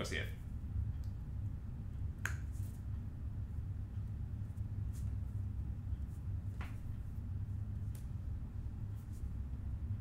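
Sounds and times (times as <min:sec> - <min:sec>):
low hum of room tone: 0:00.0 - 0:10.0.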